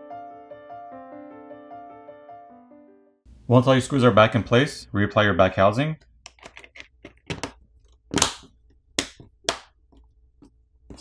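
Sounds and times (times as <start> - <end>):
plastic catches snapping into place: 6.3 - 9.7.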